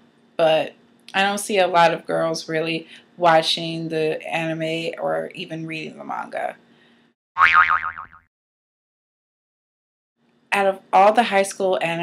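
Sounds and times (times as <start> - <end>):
cartoon boing sound effect: 7.4 - 8.3.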